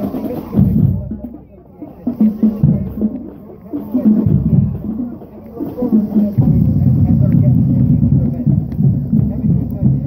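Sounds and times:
marching drumline cadence: 0.0s - 10.0s.

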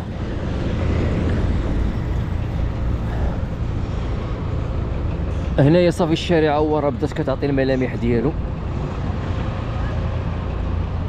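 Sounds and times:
passing street traffic: 0.0s - 11.0s
truck engines rumbling: 0.0s - 11.0s.

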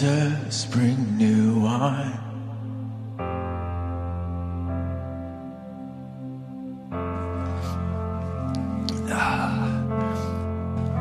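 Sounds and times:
sustained keyboard chord: 0.0s - 11.0s.

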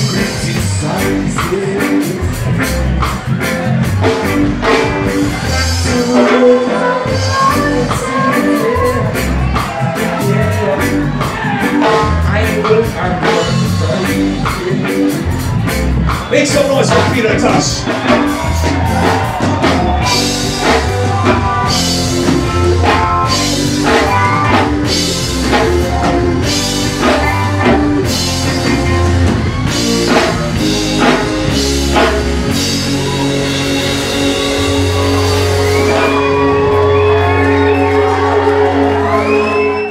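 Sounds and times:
live band playing: 0.0s - 39.9s
drum kit strikes: 16.9s - 36.8s.

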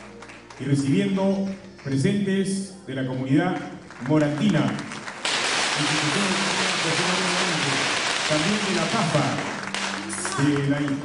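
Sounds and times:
audience applause: 3.8s - 11.0s.

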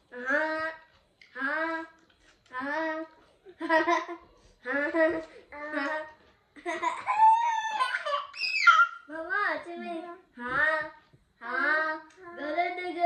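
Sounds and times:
children laughing: 3.6s - 4.3s, 6.6s - 9.0s.

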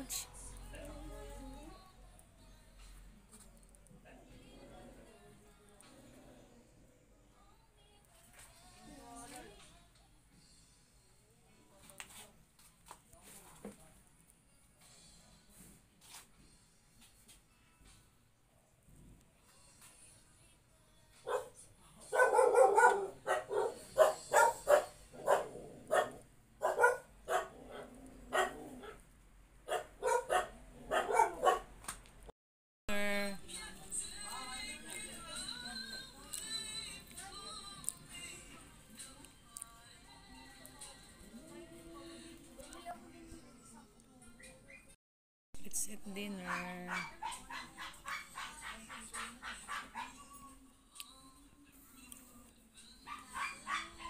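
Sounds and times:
dog barking: 21.2s - 29.0s, 29.7s - 31.7s, 46.4s - 50.2s, 53.1s - 54.0s.

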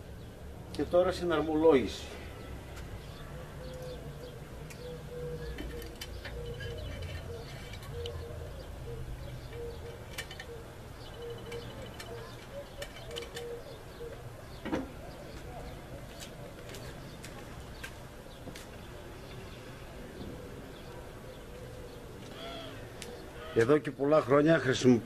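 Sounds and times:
pigeons cooing: 2.5s - 15.9s, 18.9s - 24.8s.

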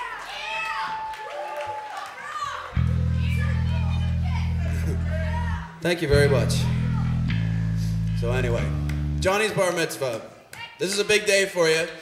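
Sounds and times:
children calling and shouting: 2.0s - 5.8s
low electric hum: 2.8s - 9.4s.

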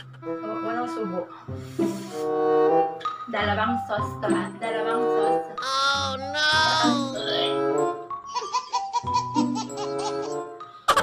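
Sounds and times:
background music: 0.0s - 11.0s
baby laughing: 5.6s - 7.6s, 8.2s - 11.0s.

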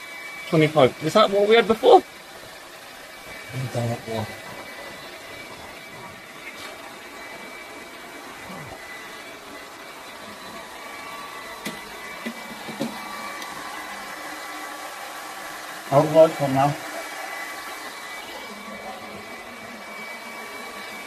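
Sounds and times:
hair dryers and heaters blowing: 0.0s - 21.0s.

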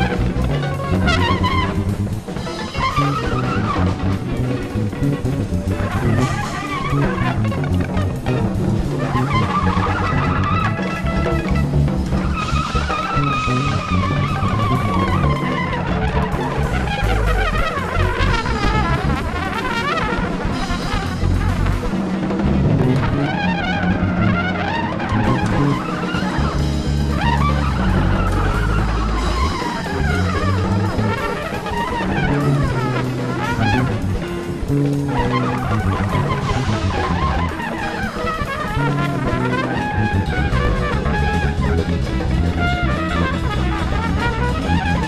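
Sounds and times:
bass guitar: 0.0s - 45.0s
drum kit: 0.0s - 45.0s
electric guitar: 0.0s - 45.0s
trumpet: 0.0s - 45.0s.

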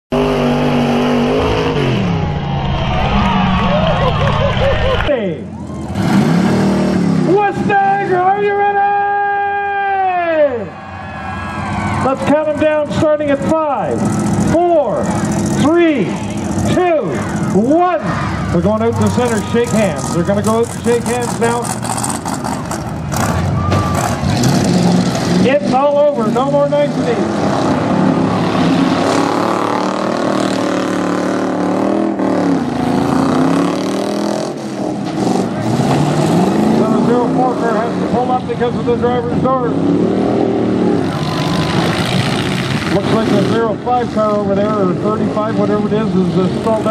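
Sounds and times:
steady tone sliding down: 1.2s - 5.1s
car engines idling: 10.6s - 29.2s, 34.6s - 46.9s.

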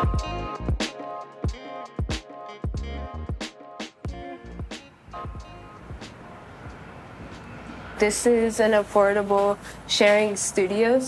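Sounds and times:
distant traffic rumble: 4.1s - 11.0s.

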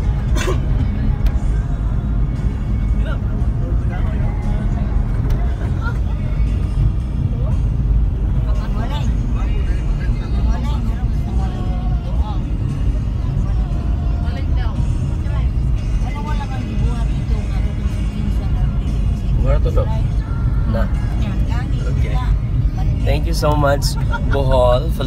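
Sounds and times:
vehicle engine and tyres on road: 0.0s - 25.0s.

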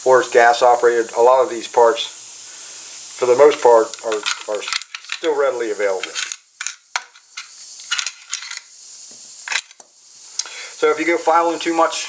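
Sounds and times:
metallic clicks of gun parts: 3.9s - 5.3s.

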